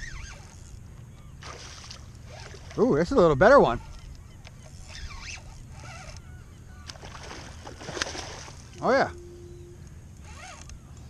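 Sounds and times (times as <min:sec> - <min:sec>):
fish thrashing and splashing: 0:01.4 - 0:02.8, 0:06.9 - 0:08.8.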